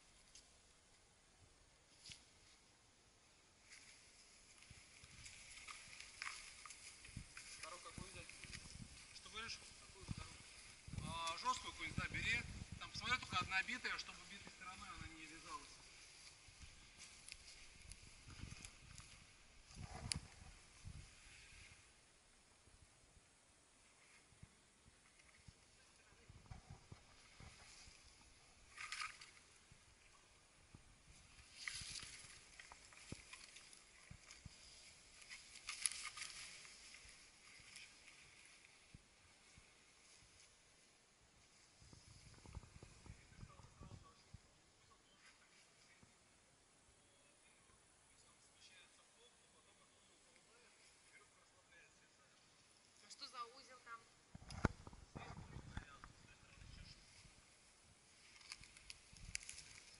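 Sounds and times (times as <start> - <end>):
faint hissing rustles: 0.0 - 59.9.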